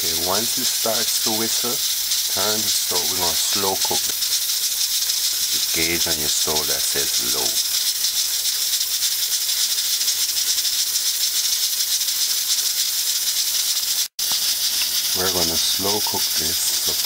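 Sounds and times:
steam hissing from pressure cooker: 0.0 - 17.0.

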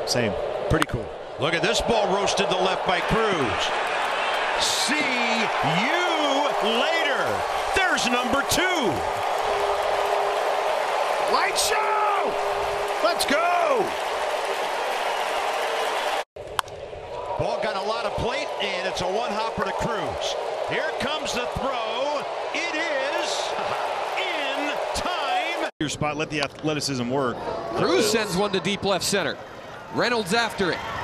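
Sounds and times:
crowd cheering and applauding: 1.4 - 16.3, 17.0 - 25.7
announcer talking: 4.6 - 9.0.

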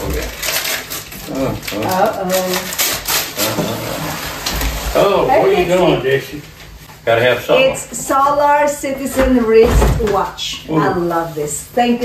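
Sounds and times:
wrapping paper tearing and crinkling: 0.0 - 5.1.

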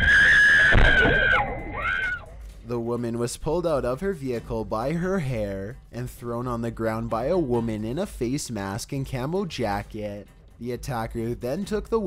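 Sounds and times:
woman screaming: 0.0 - 2.3.

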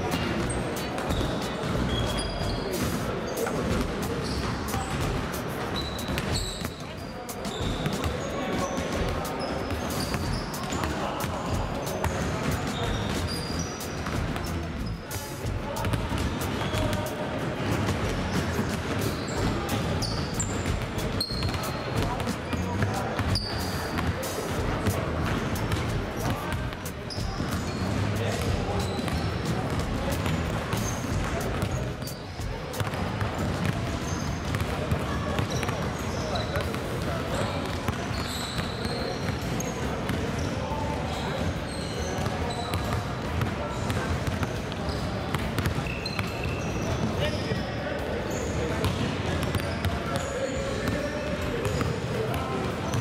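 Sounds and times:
sneakers squeaking on floor: 0.1 - 53.0
basketballs bouncing on wooden floor: 15.5 - 17.0, 17.6 - 40.5, 42.1 - 47.4
basketballs bouncing on hardwood: 32.8 - 36.7.

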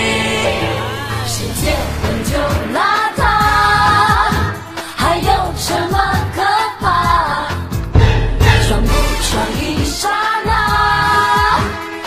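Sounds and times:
pop song with singing: 0.0 - 12.0.

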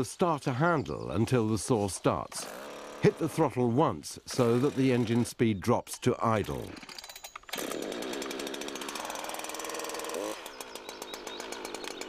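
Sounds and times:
chainsaw running: 2.3 - 3.5, 4.3 - 5.3, 6.5 - 12.0.

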